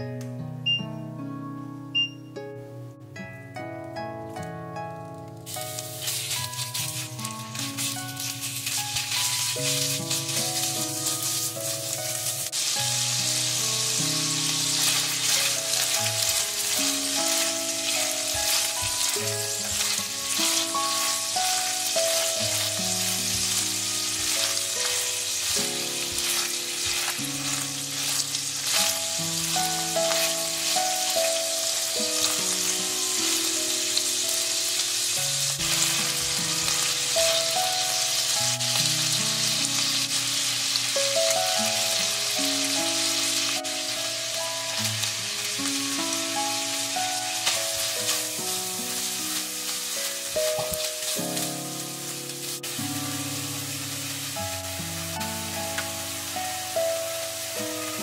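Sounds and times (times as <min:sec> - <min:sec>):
soft background music: 0:00.0 - 0:58.0
meat sizzling in a frying pan: 0:05.4 - 0:58.0
spatula scraping a pan: 0:05.7 - 0:12.8, 0:14.3 - 0:31.1.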